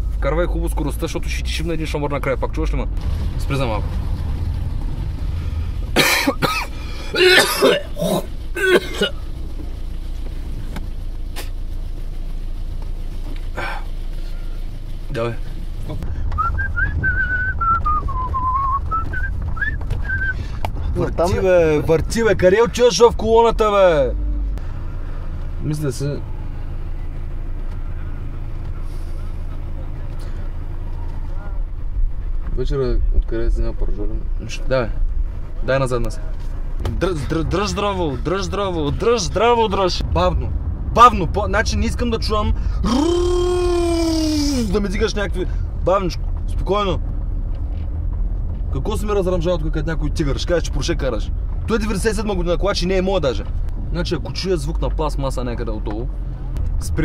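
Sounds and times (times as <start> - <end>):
car engine hum: 0.0 - 57.0
man coughing: 6.0 - 9.2.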